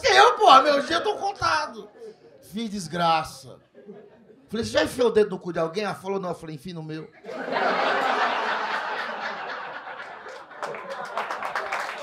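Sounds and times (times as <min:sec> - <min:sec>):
audience laughing: 0:07.2 - 0:12.0.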